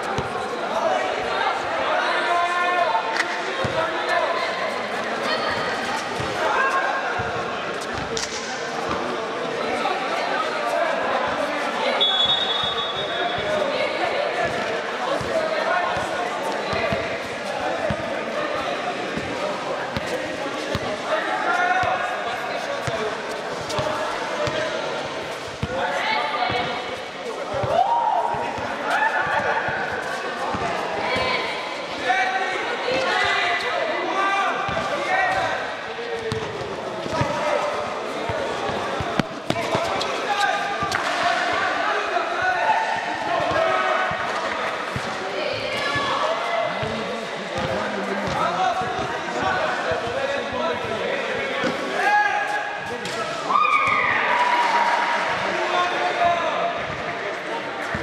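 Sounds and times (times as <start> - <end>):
basketball bouncing on court floor: 36.2 - 37.3, 47.6 - 49.1.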